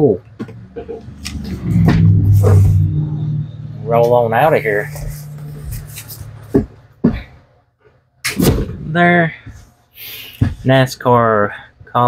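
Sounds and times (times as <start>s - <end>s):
cardboard box rubbing and shuffling: 4.9s - 6.4s.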